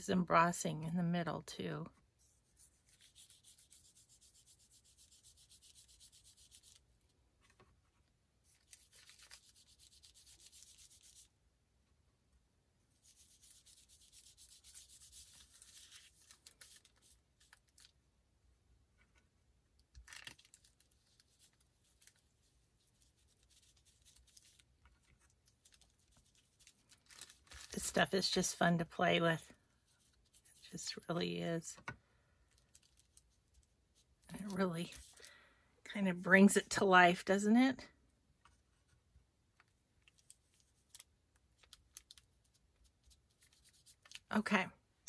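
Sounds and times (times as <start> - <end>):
fingertips rubbing paper: 2.5 - 6.8, 8.7 - 11.3, 13.0 - 17.1.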